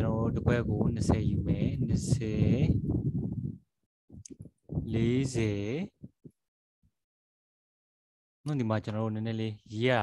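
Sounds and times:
man speaking in sing-song voice: 4.9s - 6.0s.

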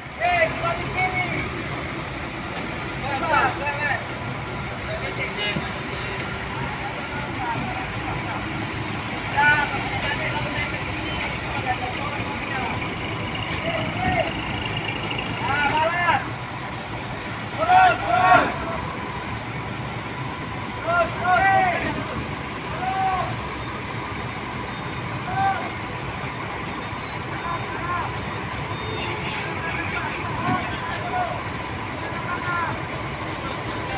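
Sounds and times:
heavy machinery engines running: 4.0s - 21.2s, 21.9s - 33.9s
workers shouting: 6.2s - 16.4s, 17.5s - 19.0s, 20.8s - 23.4s, 25.2s - 26.0s, 27.2s - 32.9s.

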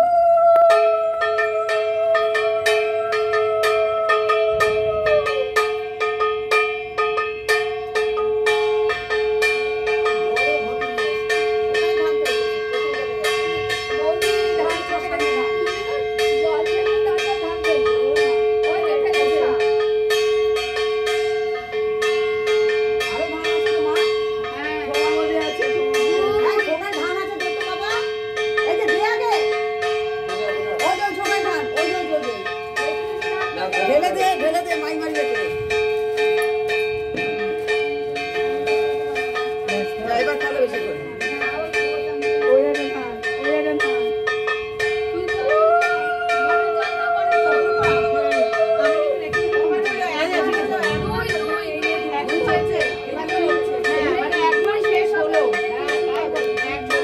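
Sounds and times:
voices: 0.0s - 6.0s, 7.5s - 35.8s, 36.4s - 57.0s
bells struck in rhythm: 0.0s - 57.0s.

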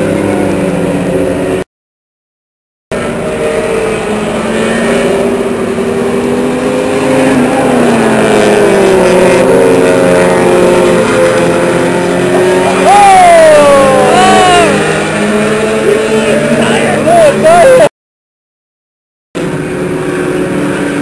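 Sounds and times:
race car engines passing: 0.0s - 1.6s, 2.9s - 17.9s, 19.4s - 21.0s.

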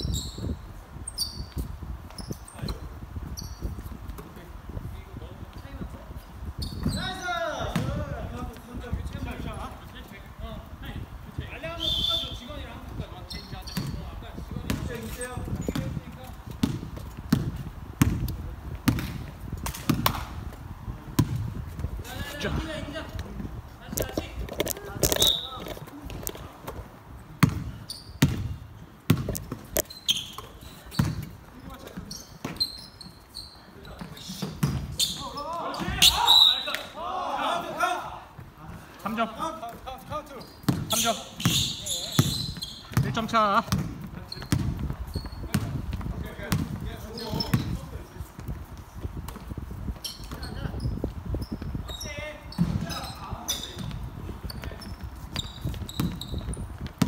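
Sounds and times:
sneakers squeaking on floor: 0.0s - 4.0s, 6.5s - 8.0s, 11.8s - 19.2s, 24.0s - 26.8s, 27.4s - 36.9s, 39.1s - 48.5s, 49.4s - 57.0s
basketball bouncing: 14.6s - 15.1s, 15.7s - 20.3s, 21.2s - 21.5s, 27.4s - 32.6s, 34.4s - 34.9s, 40.6s - 47.8s, 53.6s - 57.0s
players calling out: 34.1s - 43.7s.

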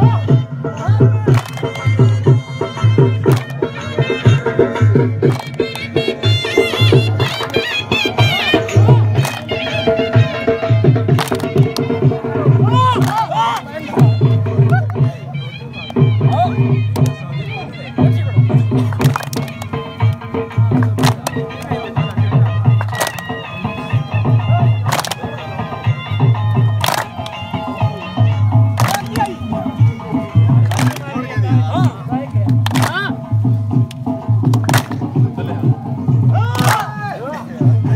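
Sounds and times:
folk music with melodic line: 0.0s - 37.9s
dancers clapping: 1.3s - 1.8s, 3.2s - 3.6s, 5.2s - 5.9s, 7.1s - 7.6s, 9.2s - 9.5s, 11.1s - 11.9s, 13.0s - 13.7s, 18.9s - 20.2s, 20.8s - 21.7s, 22.7s - 23.4s, 24.8s - 25.4s, 26.6s - 27.4s, 28.7s - 29.2s, 30.6s - 31.1s, 32.5s - 33.0s, 33.8s - 35.1s, 36.6s - 36.9s.

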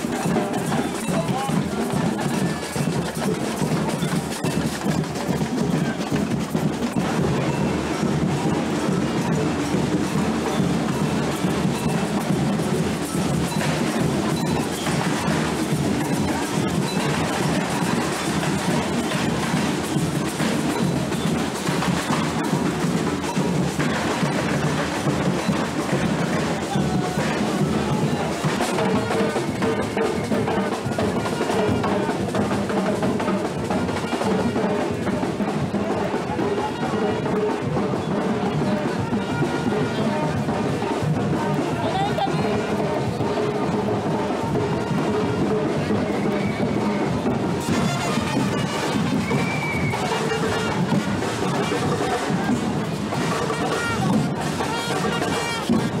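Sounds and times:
carnival drums and percussion: 0.0s - 56.0s
trombone notes: 47.6s - 49.2s.

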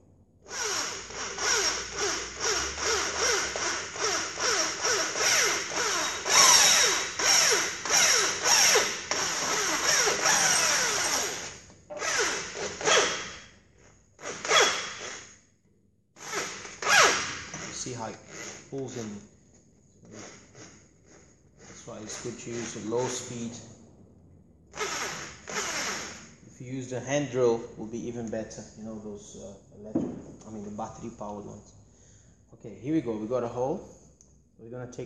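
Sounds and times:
electric drill squealing through metal: 0.4s - 13.5s, 14.2s - 15.3s, 20.0s - 23.4s, 24.7s - 26.4s.

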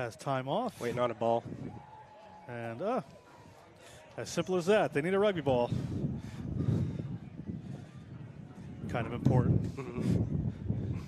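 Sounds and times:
wind buffeting microphone: 1.0s - 2.0s, 4.8s - 11.0s.

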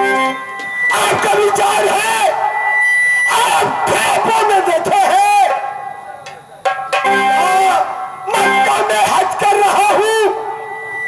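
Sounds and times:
thin high whistle: 0.0s - 4.1s, 10.0s - 11.0s
man's amplified warbling voice: 0.9s - 2.6s, 3.2s - 10.7s.

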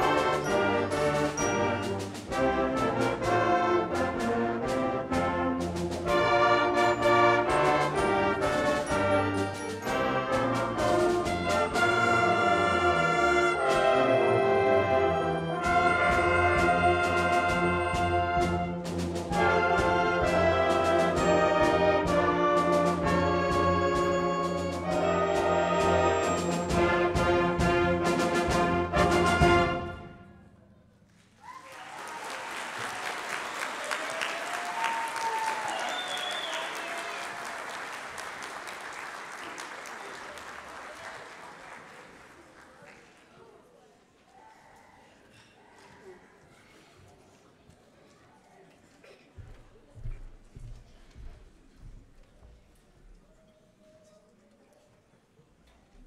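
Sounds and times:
concert band playing: 0.0s - 30.3s
audience applause: 31.4s - 43.4s.

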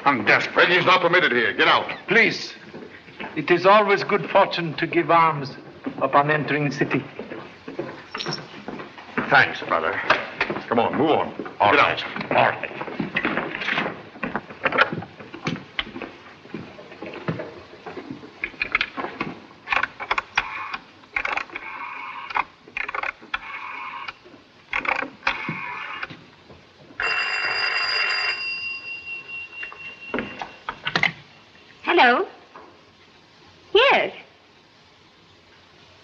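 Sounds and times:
telephone bell ringing: 27.0s - 30.7s.

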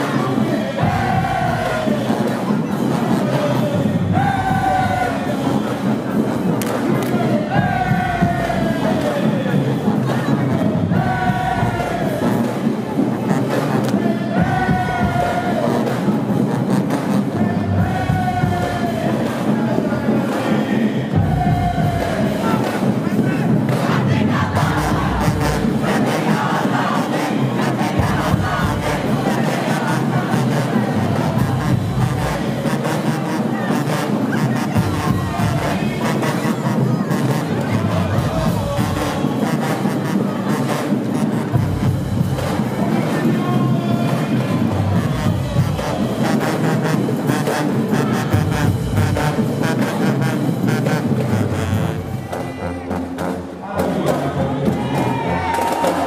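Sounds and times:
marching band playing: 0.0s - 56.0s.

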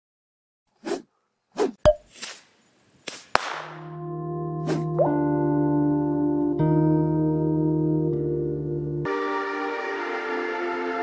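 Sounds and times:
held musical chord: 3.9s - 11.0s.

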